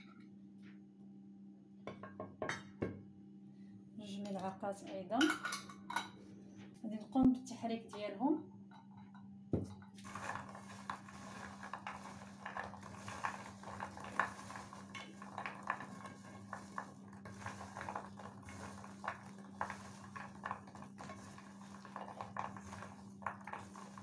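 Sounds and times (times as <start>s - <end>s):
cookies clicking in clay dish: 10.0s - 24.0s.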